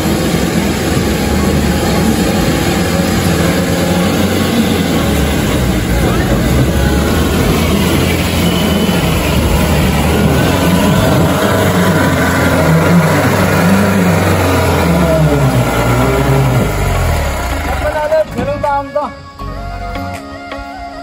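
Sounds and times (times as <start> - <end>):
diesel engine revving in mud: 0.0 - 18.5.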